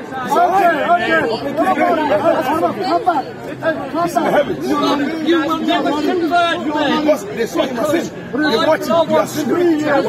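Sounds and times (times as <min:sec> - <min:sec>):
men arguing: 0:00.2 - 0:10.0.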